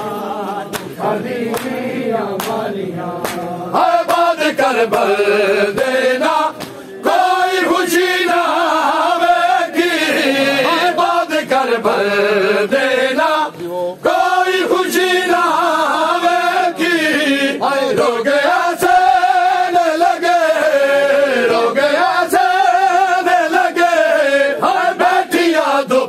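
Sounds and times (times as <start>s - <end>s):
men chanting a lament: 0.0s - 26.0s.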